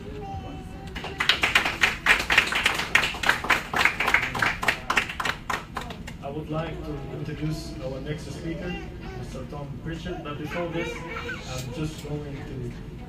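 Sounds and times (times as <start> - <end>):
small audience clapping: 0.9 - 6.2.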